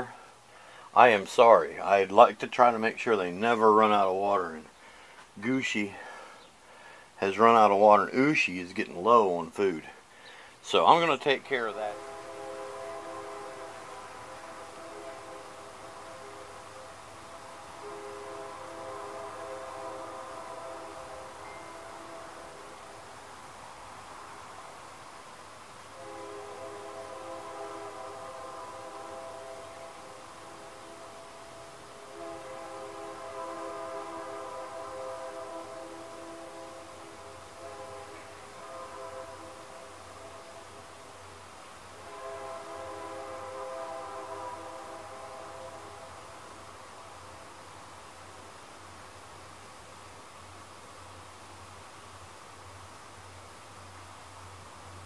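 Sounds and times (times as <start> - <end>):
train horn blasts: 0.0 - 2.3, 3.1 - 7.0, 10.7 - 24.7, 25.8 - 48.5
faint low train rumble: 0.0 - 55.0.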